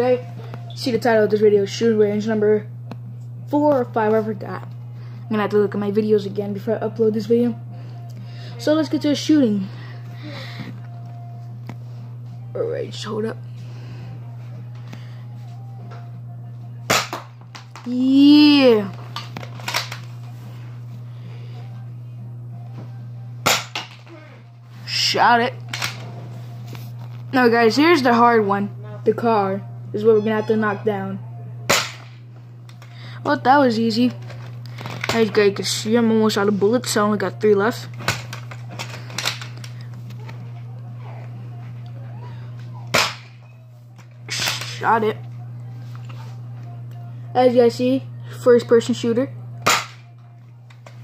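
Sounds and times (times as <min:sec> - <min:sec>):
low hum: 0:00.0 - 0:51.0
toy dart blaster snap: 0:31.7 - 0:32.2.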